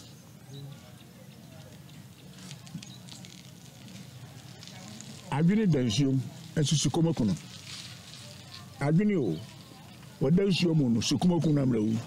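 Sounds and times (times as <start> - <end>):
light crackles: 0.7 - 12.0.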